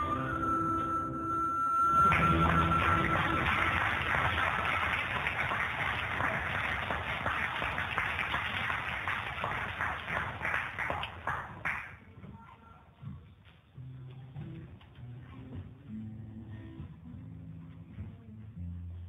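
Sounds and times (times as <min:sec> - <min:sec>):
harmonica note: 0:00.0 - 0:04.1
acoustic guitar: 0:00.0 - 0:05.0
audience applauding: 0:02.0 - 0:12.0.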